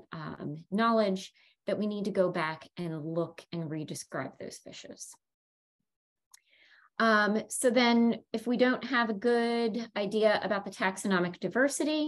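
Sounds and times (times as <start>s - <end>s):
woman speaking: 0.0s - 5.2s, 7.0s - 12.0s.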